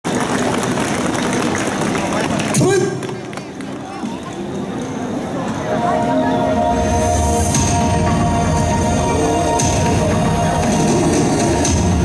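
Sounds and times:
crowd voices and bustle: 0:00.0 - 0:12.0.

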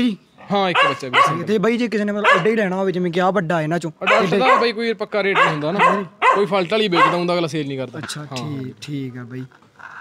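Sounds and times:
man talking: 0:00.0 - 0:09.6
dogs barking and yipping: 0:00.5 - 0:01.6, 0:02.2 - 0:02.6, 0:04.0 - 0:07.4.

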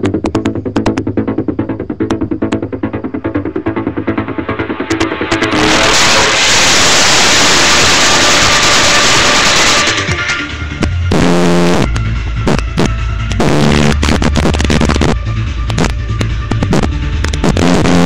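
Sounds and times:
electronic music through speakers: 0:00.0 - 0:18.0
heavy rhythmic bass line: 0:00.0 - 0:18.0.

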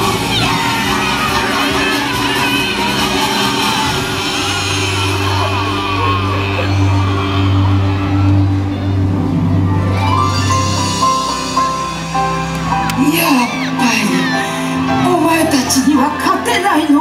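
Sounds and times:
loud parade music: 0:00.0 - 0:17.0
voices shouting and whooping: 0:00.0 - 0:17.0
low bass note: 0:02.2 - 0:13.0.

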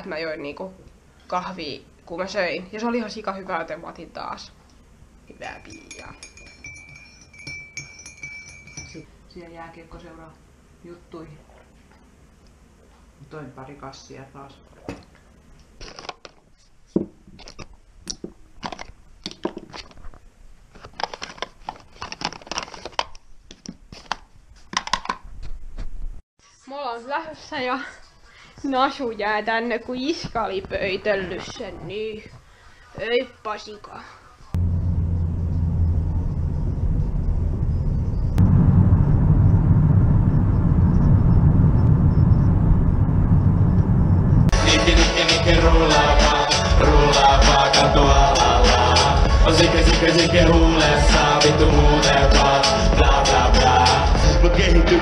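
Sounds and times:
rustling of cosmetic bag: 0:18.6 - 0:24.8
plastic compacts clacking: 0:20.8 - 0:25.2
car road and engine rumble: 0:34.6 - 0:44.5
loud rap music: 0:44.5 - 0:55.0.

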